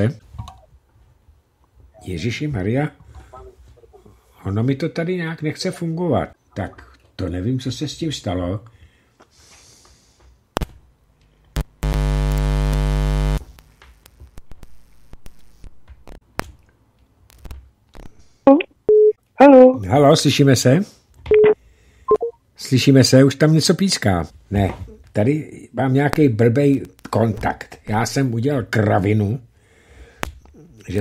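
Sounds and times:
man speaking: 2.0s - 3.0s, 30.7s - 31.0s
clicks and crackles: 10.6s - 18.2s
electrical mains hum: 10.9s - 16.2s.

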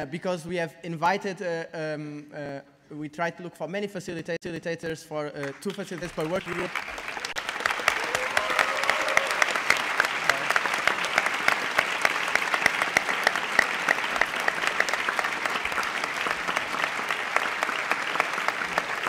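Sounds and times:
audience applause: 5.4s - 19.0s.

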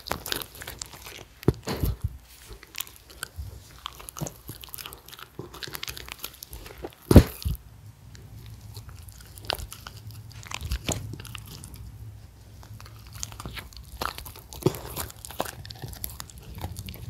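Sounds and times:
dogs crunching food: 0.0s - 17.0s
low steady hum: 0.0s - 17.0s.

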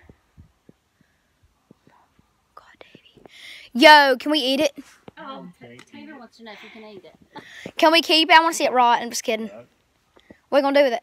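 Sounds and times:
faint soft low thumps: 0.0s - 3.4s.

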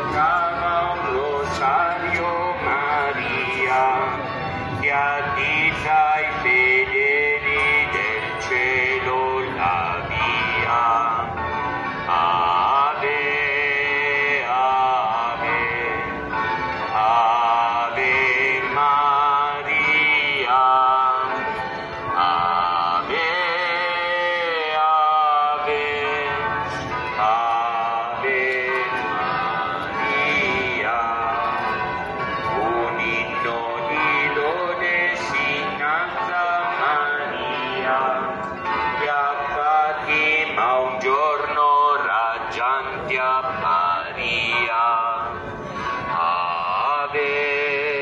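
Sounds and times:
man singing a hymn: 0.0s - 48.0s.

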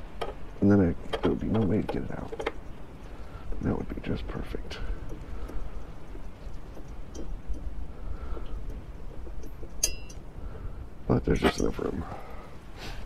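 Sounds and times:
wind rumble on microphone: 0.0s - 13.0s
metallic clink: 8.4s - 10.3s, 11.3s - 12.2s.

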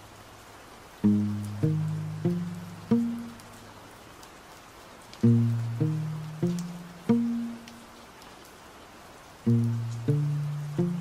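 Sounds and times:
faint steady hiss: 0.0s - 11.0s
plucked acoustic guitar notes: 1.0s - 3.5s, 5.2s - 7.8s, 9.5s - 11.0s.

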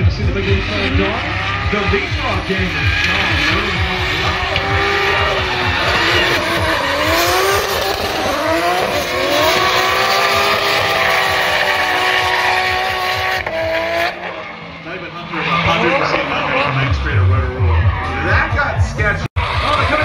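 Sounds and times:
car engines revving: 0.0s - 20.0s
tyres squealing: 0.9s - 12.9s.

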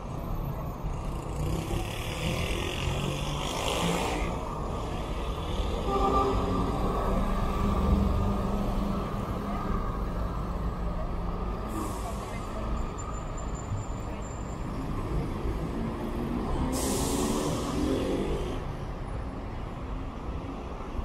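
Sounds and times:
diesel bus engine pulling away: 6.6s - 18.7s
air brakes hissing: 11.7s - 12.6s, 16.6s - 17.8s.

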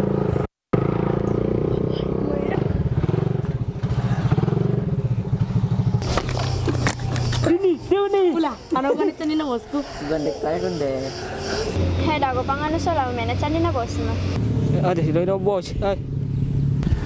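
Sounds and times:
motorcycle engine running: 0.0s - 17.0s.

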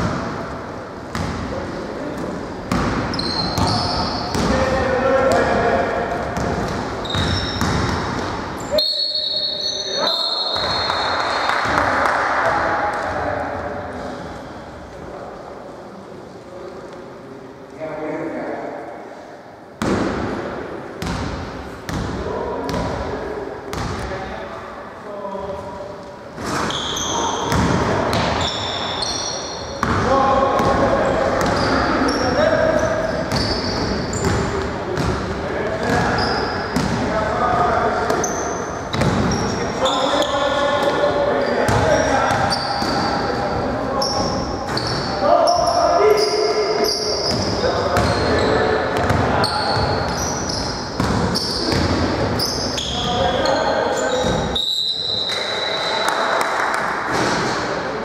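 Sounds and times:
sneaker squeaks: 2.7s - 4.6s, 6.3s - 11.8s, 26.4s - 30.0s, 30.6s - 35.1s, 35.8s - 37.0s, 38.0s - 56.1s.

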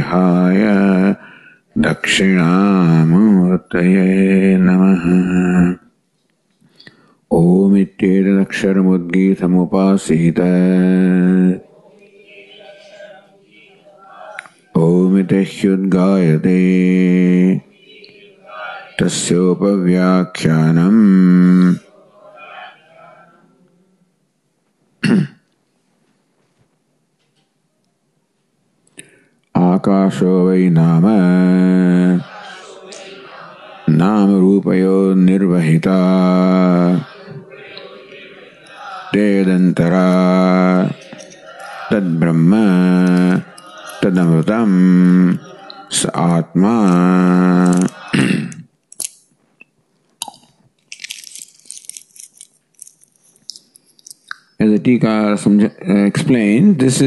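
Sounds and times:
breathy hiss: 1.2s - 1.8s
soft breathing: 6.6s - 7.3s
man clearing his throat: 25.0s - 25.5s, 48.1s - 48.6s
mouth clicks: 47.5s - 51.1s, 53.4s - 54.6s.

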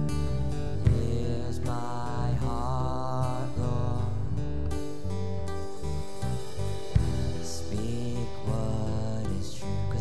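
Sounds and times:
bass notes: 0.0s - 10.0s
drums and cymbals: 5.5s - 10.0s.

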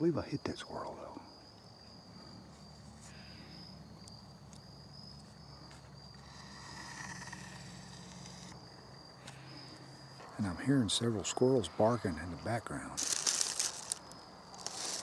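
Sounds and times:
crickets trilling: 0.0s - 15.0s.

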